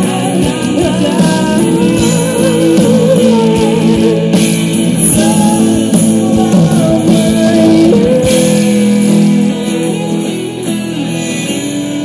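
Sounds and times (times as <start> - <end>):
live pop-rock band playing: 0.0 - 12.0.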